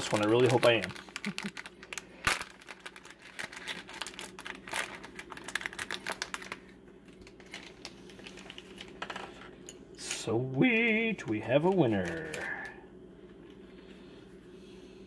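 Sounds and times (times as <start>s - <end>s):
plastic bag crinkling: 0.0s - 9.5s, 11.4s - 12.7s.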